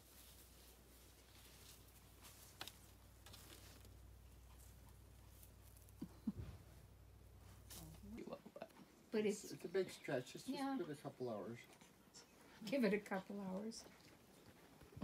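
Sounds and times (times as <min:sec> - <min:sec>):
faint low rumble: 0:00.0 - 0:09.1.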